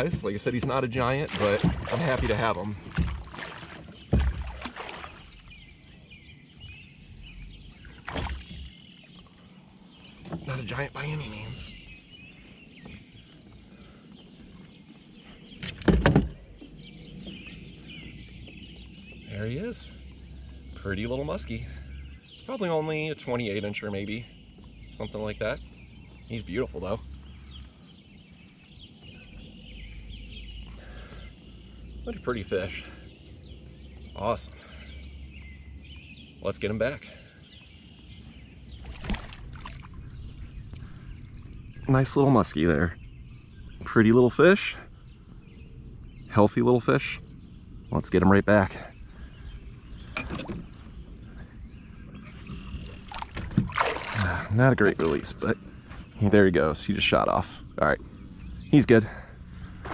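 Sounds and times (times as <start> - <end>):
knocks against a kayak: 0.0 - 5.0, 15.6 - 17.4, 50.1 - 50.8
faint bird chirping: 0.0 - 59.9.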